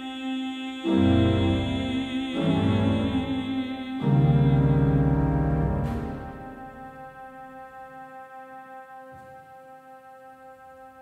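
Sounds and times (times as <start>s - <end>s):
pipe organ chord: 0.8s - 11.0s.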